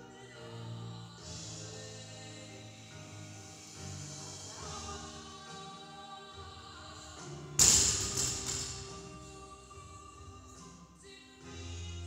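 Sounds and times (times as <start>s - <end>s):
barbell crashing onto rubber floor: 7.6s - 8.9s.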